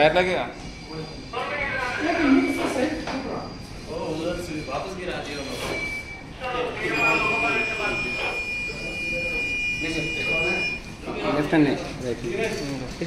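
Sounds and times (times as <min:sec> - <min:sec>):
people talking: 0:00.0 - 0:13.0
buzzer high-pitched tone: 0:01.6 - 0:03.6, 0:05.3 - 0:10.9.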